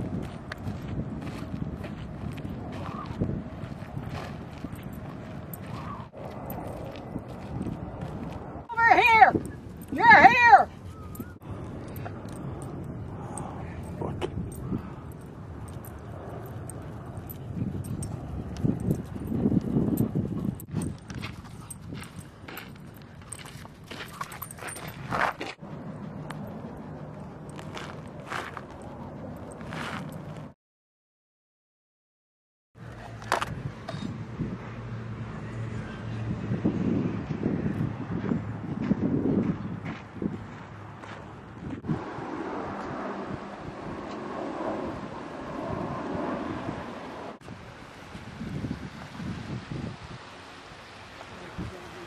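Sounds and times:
wind buffeting microphone: 0:00.0 - 0:30.5, 0:33.0 - 0:50.4
scuffs and clicks: 0:20.6 - 0:25.6, 0:26.2 - 0:30.5.

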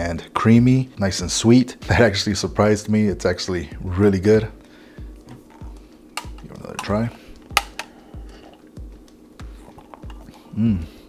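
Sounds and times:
background music with low beat: 0:00.0 - 0:11.0
sipping thick drink: 0:07.8 - 0:08.8, 0:09.4 - 0:10.9.

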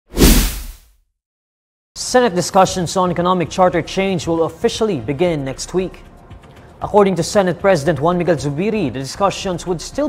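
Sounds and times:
whoosh with deep low boom: 0:00.1 - 0:00.8.

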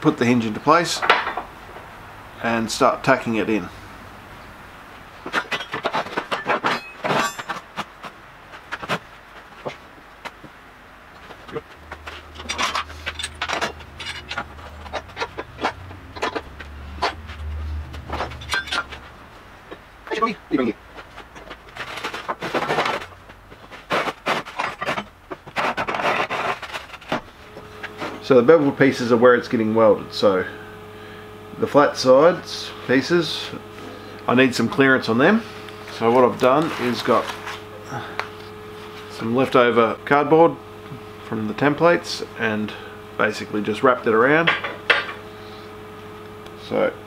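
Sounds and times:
metallic clinks and clanks: 0:05.3 - 0:07.6, 0:12.3 - 0:16.5, 0:18.2 - 0:19.0
low hum: 0:11.2 - 0:23.8, 0:26.5 - 0:47.0.

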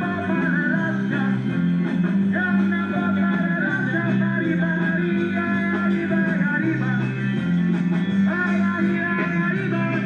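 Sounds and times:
guitars: 0:00.0 - 0:10.0
live rock and roll band: 0:00.0 - 0:10.0
steady bass line: 0:00.0 - 0:10.0.

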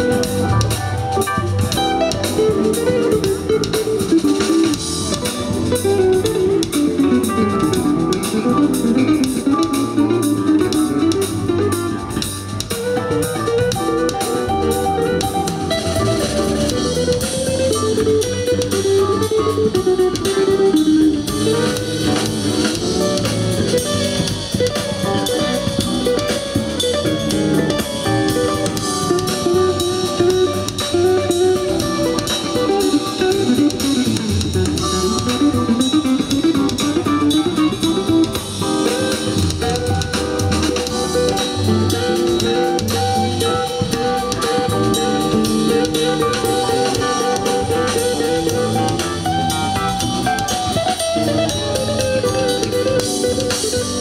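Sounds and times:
bass: 0:00.0 - 0:54.0
drum kit: 0:00.0 - 0:54.0
electric guitar melody: 0:00.0 - 0:54.0.

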